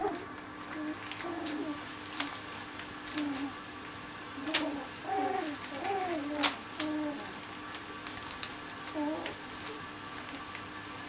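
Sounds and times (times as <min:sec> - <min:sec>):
puppies whiny grumbles: 0:00.0 - 0:03.7, 0:04.3 - 0:10.5
paws ticking on newspaper: 0:00.0 - 0:11.0.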